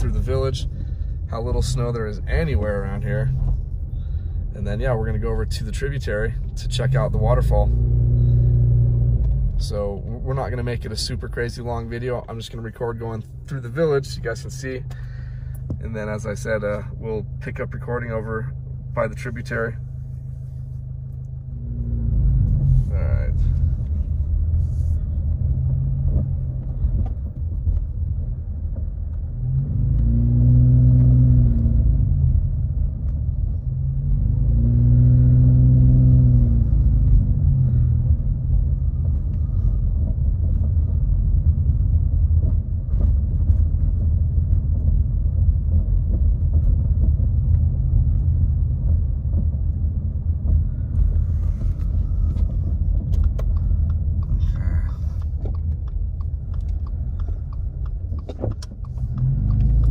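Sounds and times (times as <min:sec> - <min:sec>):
car engine and road rumble: 0:00.0 - 0:59.9.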